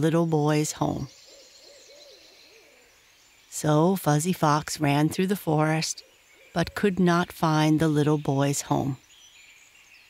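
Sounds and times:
owl hooting: 0:00.8 - 0:03.0
night forest hiss: 0:01.1 - 0:04.6, 0:08.8 - 0:10.0.

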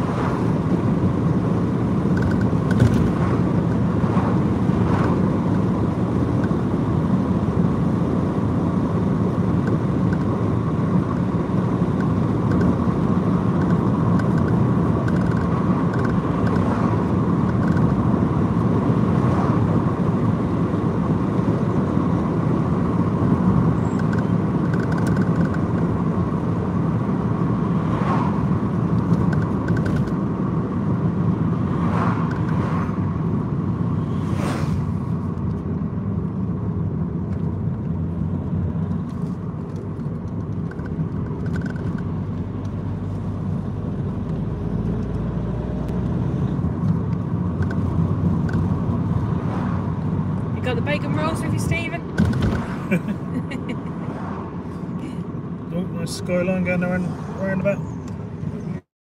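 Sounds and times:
car engine and tyre rumble: 0:00.0 - 0:58.9.

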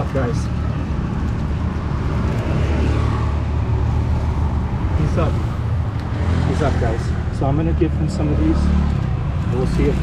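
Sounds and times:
motorcycle engines passing: 0:00.0 - 0:10.0.

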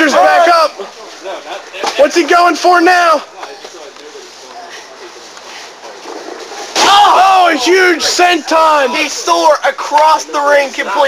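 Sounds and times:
faint distant voices: 0:00.0 - 0:11.0
outdoor background hiss: 0:00.0 - 0:11.0
commentator exclaiming: 0:06.8 - 0:11.0.

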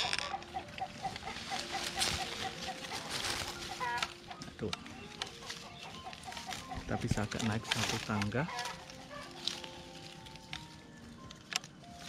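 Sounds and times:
chicken clucking: 0:00.0 - 0:11.7
leaves and twigs rustling: 0:00.0 - 0:12.0.

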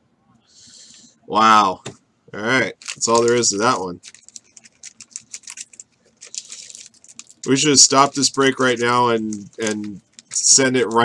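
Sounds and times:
plastic packaging crinkling: 0:02.6 - 0:11.0.

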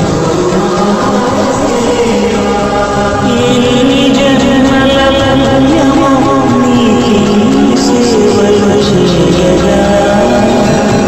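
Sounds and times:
chorus chanting held notes: 0:00.0 - 0:11.0
musical accompaniment: 0:00.0 - 0:11.0.

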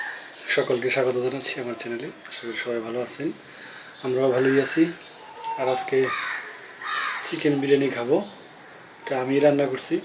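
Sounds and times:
bird calling: 0:03.6 - 0:10.0
man's voice: 0:07.2 - 0:08.4.

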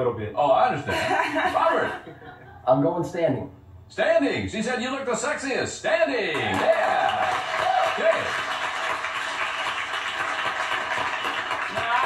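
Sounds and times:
studio audience applauding: 0:06.3 - 0:12.0.

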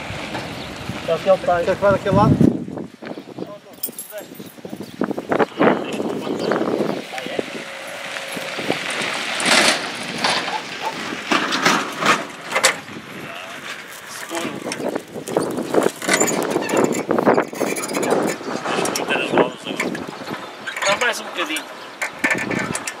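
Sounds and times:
metal clanks and clicks: 0:11.3 - 0:12.8, 0:14.3 - 0:23.0.

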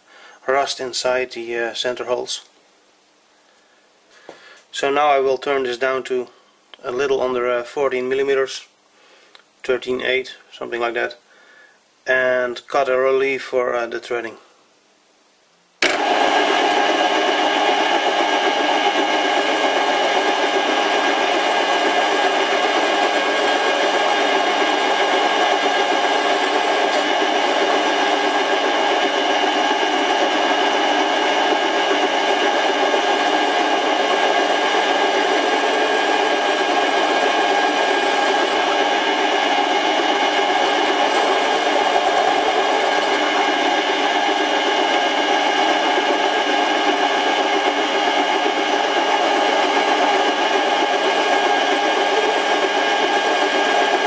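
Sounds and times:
metal lathe whining: 0:15.9 - 0:54.0.

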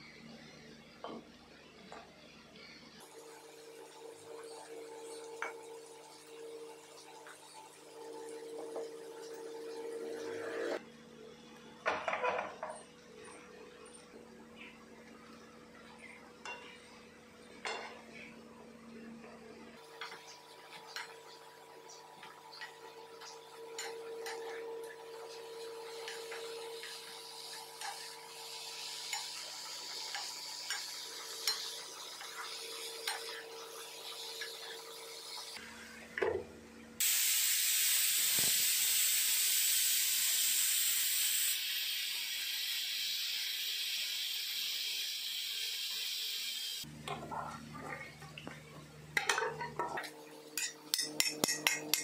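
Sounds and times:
soft sizzle: 0:14.1 - 0:36.1, 0:37.0 - 0:51.8
vegetables frying loud sizzle: 0:19.8 - 0:35.6, 0:37.0 - 0:46.9.

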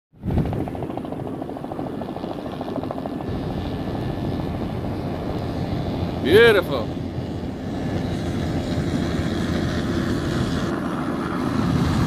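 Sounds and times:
rush of wind and water: 0:00.1 - 0:12.0
helicopter rotor beating: 0:00.2 - 0:12.0.

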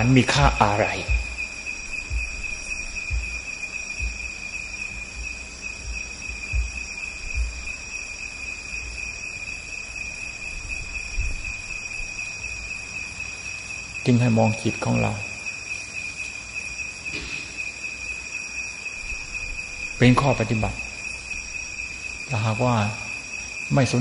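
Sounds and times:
low dull thumps: 0:00.0 - 0:09.1, 0:10.6 - 0:12.1
crickets chirring: 0:00.0 - 0:24.0.

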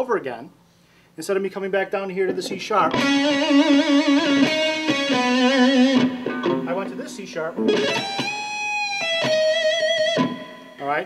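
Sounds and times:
electric guitar lead with vibrato: 0:02.9 - 0:10.8.

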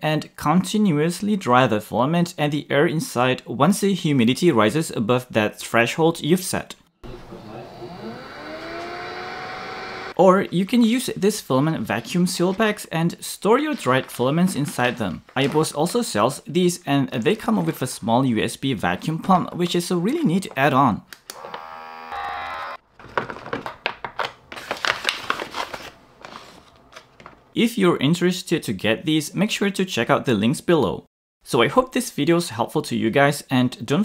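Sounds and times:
electric vacuum pump humming: 0:07.0 - 0:10.2, 0:21.3 - 0:22.8
electric motor whirring: 0:07.1 - 0:10.2, 0:21.3 - 0:22.8.

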